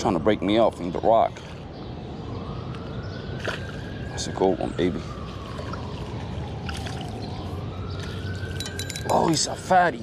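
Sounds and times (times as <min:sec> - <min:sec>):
distant siren wailing: 0:00.0 - 0:10.0
water splashing and trickling: 0:02.7 - 0:09.9.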